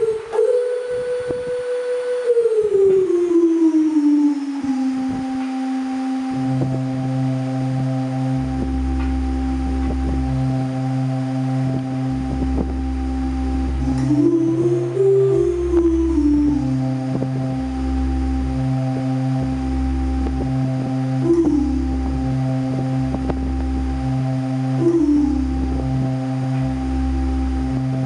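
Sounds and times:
low sustained bass notes: 0.0 - 28.0
synth lead tone sliding: 0.0 - 28.0.

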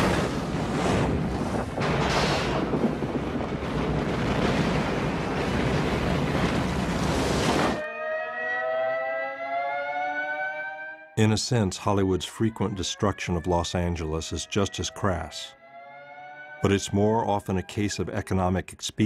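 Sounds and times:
explosion roar: 0.0 - 7.8.

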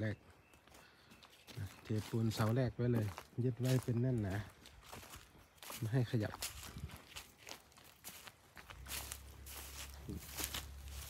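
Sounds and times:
footsteps on dry grass and twigs: 0.0 - 11.0.

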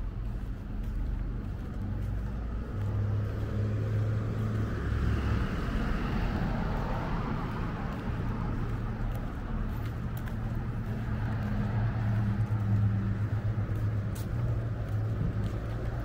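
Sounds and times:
bus engine hum: 0.0 - 16.0.

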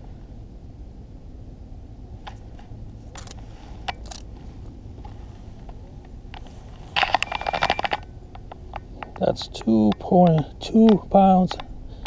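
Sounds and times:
steady low rumble: 0.0 - 12.0
metal fish scale rattling clicks: 3.1 - 4.3.

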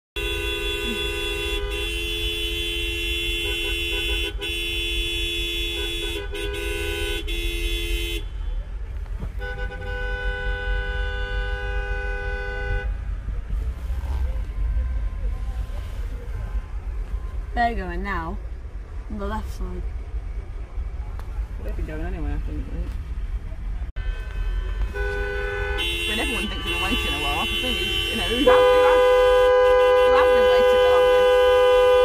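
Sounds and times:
car horns honking: 0.2 - 18.2, 23.2 - 32.0.

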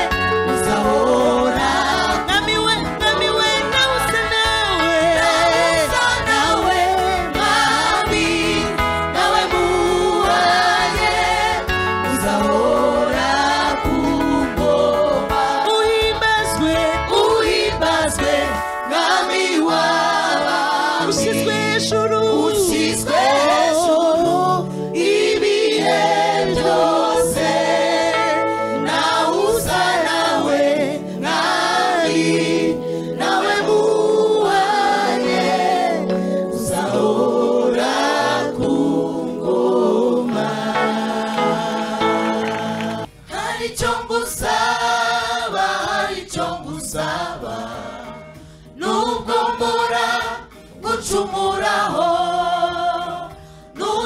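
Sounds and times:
gospel choir singing: 0.0 - 54.0
amplified accompaniment: 25.0 - 43.6.

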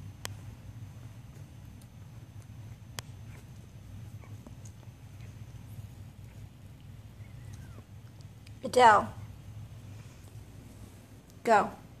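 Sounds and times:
low steady hum: 0.0 - 12.0
puppies suckling clicks: 1.3 - 8.6
tiny puppy squeaks: 2.6 - 5.5, 6.2 - 8.0.

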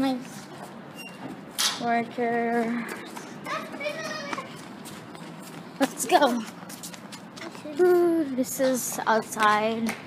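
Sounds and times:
child calling out: 3.5 - 4.6.

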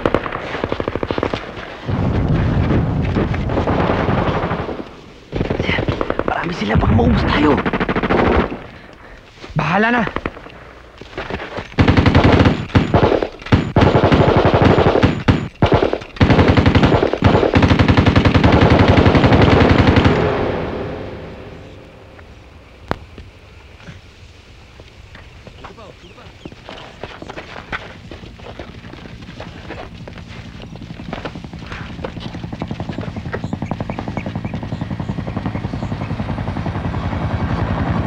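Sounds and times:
automatic gunfire: 0.0 - 1.6, 7.3 - 8.6, 11.8 - 21.1.

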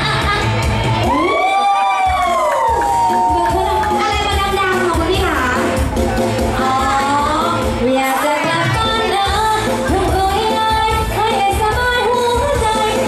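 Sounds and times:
backing music with bass beat: 0.0 - 13.0
woman singing into microphone: 6.5 - 13.0.

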